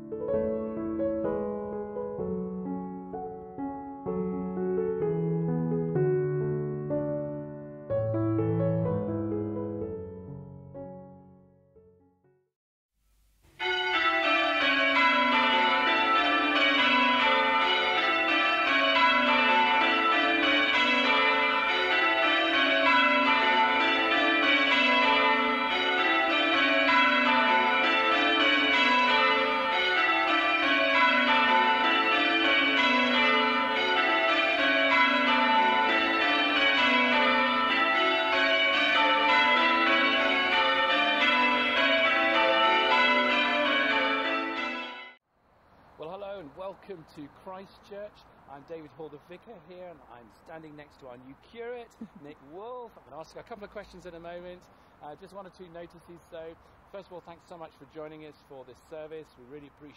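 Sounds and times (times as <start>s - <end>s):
church bells ringing: 13.6s - 45.2s.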